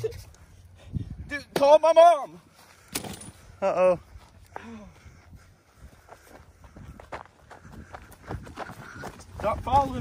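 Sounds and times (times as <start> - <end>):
footsteps on dry grass: 2.4 - 10.0.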